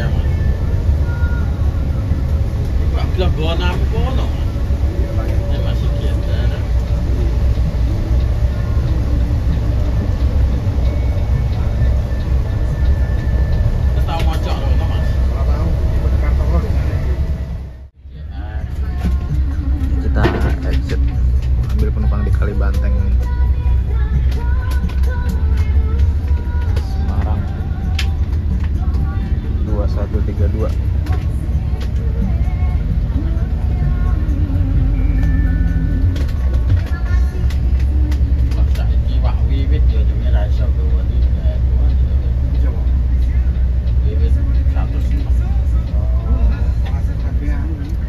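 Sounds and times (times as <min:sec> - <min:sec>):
bus engine and tyres rumbling: 0:00.0 - 0:48.0.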